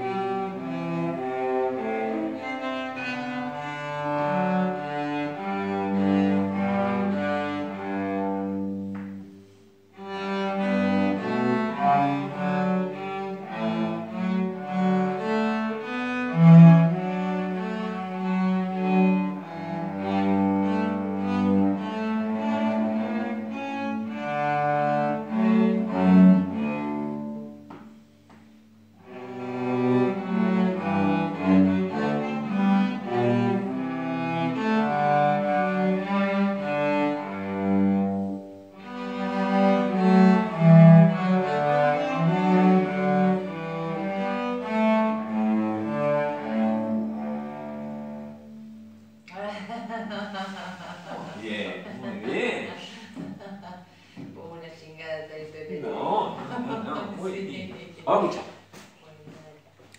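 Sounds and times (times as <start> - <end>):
cello duet: 0.0 - 59.9.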